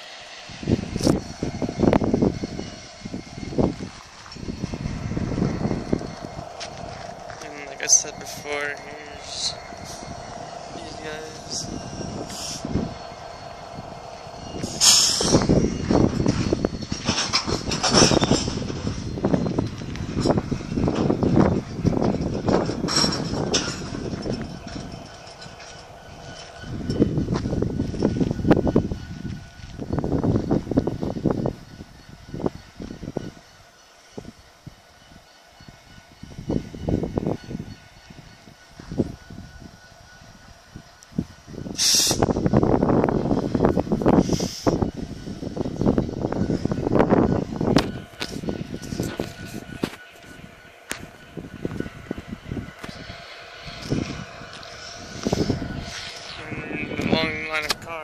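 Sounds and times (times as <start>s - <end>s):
freight train rolling on rails: 0.0s - 58.0s
train cars clanking: 0.0s - 58.0s.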